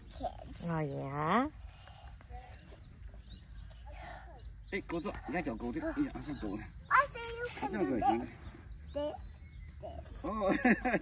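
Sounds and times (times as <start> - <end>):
child whining and vocalizing: 0.0 - 0.6.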